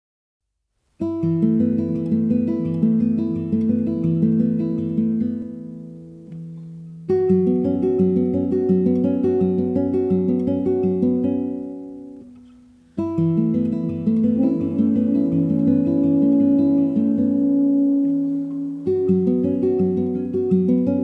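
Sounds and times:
classical guitar arpeggios: 1.0 - 21.0.

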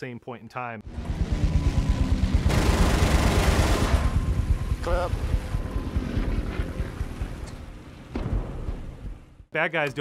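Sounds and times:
pulsing aircraft engine rumble: 0.9 - 9.2
machine guns firing: 2.4 - 4.3.

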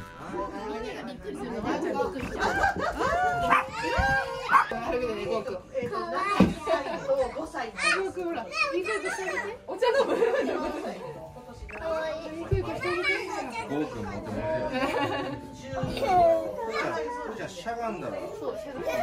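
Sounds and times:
children and adults chattering: 0.0 - 19.0.

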